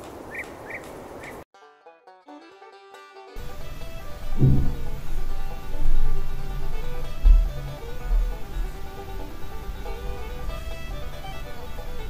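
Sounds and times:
outdoor background hiss: 0:00.0 - 0:01.4, 0:03.4 - 0:12.0
plucked-string music: 0:01.6 - 0:12.0.

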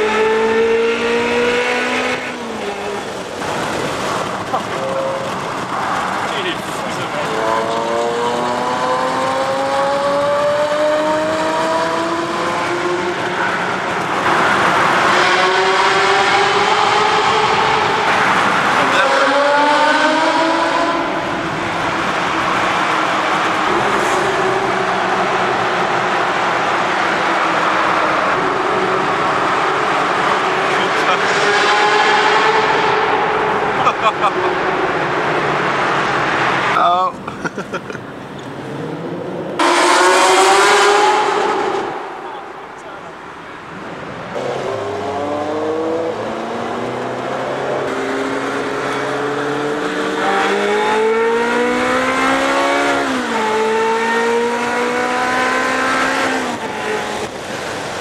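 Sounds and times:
sports car engine accelerating: 0:00.0 - 0:37.0, 0:37.9 - 0:58.0
tyre and road noise: 0:00.0 - 0:58.0.

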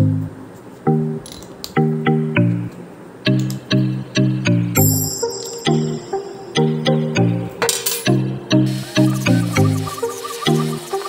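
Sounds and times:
light bouncy plucked notes music: 0:00.0 - 0:11.0.

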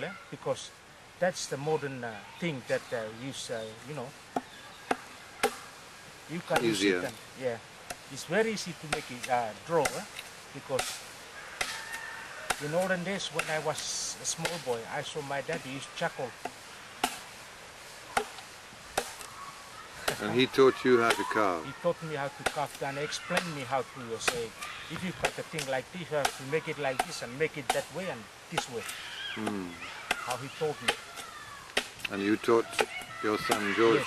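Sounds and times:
carving tool chopping wood: 0:06.5 - 0:07.2, 0:08.8 - 0:11.0, 0:11.6 - 0:11.9, 0:12.5 - 0:14.8, 0:16.4 - 0:17.3, 0:18.1 - 0:19.3, 0:22.4 - 0:27.9, 0:28.6 - 0:28.8, 0:29.4 - 0:32.1, 0:32.7 - 0:33.7.

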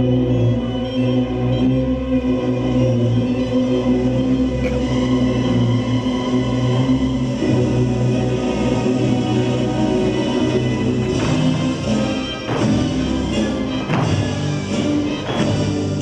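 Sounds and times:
choir singing: 0:00.0 - 0:16.0
stage dance music: 0:00.0 - 0:16.0.

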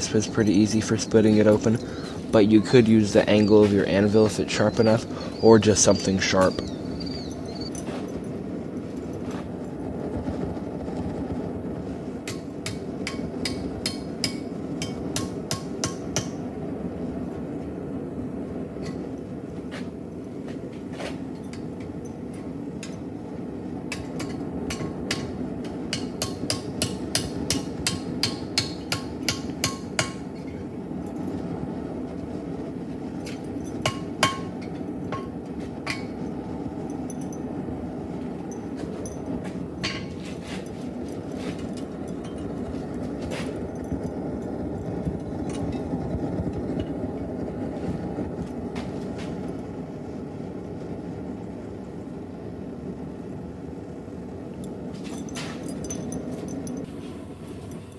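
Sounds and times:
hammer striking metal: 0:12.3 - 0:16.4, 0:25.9 - 0:30.2, 0:33.8 - 0:35.3.

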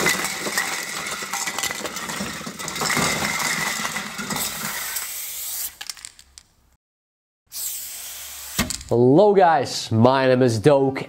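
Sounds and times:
spray can hissing: 0:04.6 - 0:05.8, 0:07.5 - 0:08.8.

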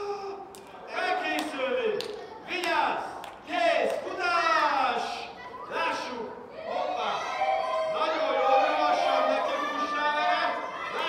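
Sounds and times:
children calling out: 0:05.0 - 0:11.0.

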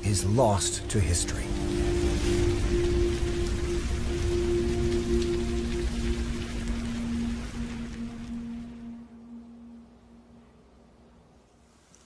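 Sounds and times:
low drone notes: 0:00.0 - 0:11.1
dense rain-like crackling: 0:00.0 - 0:12.0
low rumble: 0:00.8 - 0:10.1.

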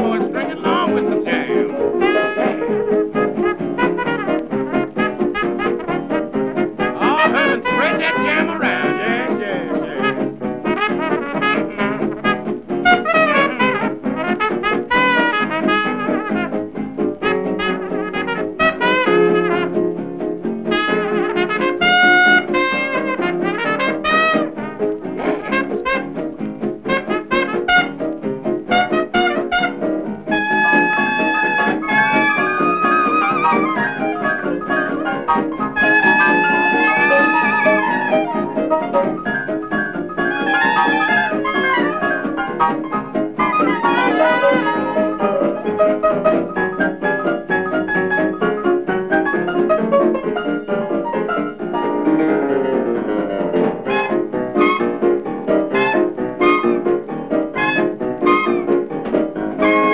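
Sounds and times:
swing jazz band with trumpet: 0:00.0 - 0:59.9.

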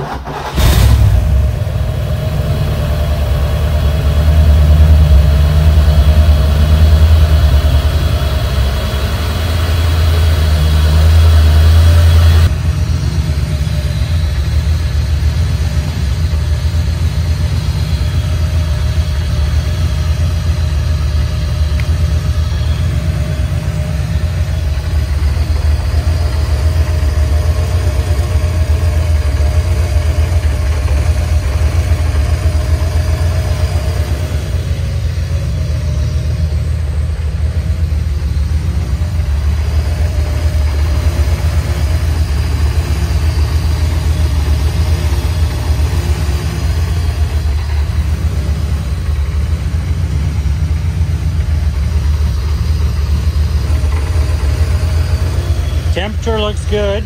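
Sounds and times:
car engine starting and idling: 0:00.0 - 0:57.0.

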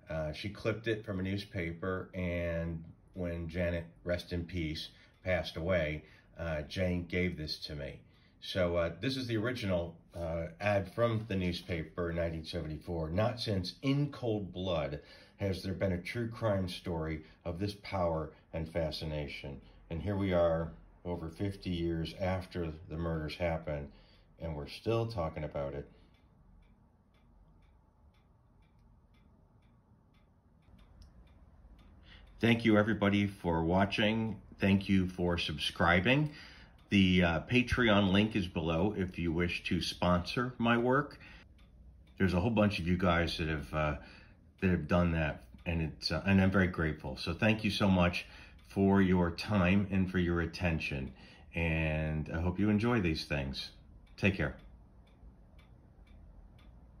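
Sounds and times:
faint evenly spaced ticks: 0:00.0 - 0:57.0.

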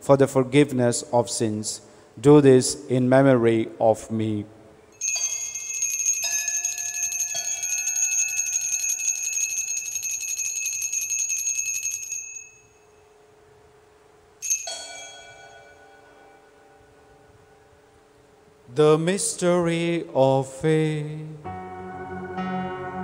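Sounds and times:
small bells jingling: 0:05.0 - 0:12.8, 0:14.4 - 0:16.1.

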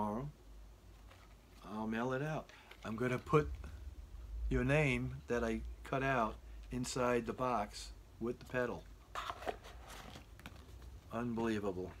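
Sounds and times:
cardboard box rustle: 0:09.1 - 0:11.6.

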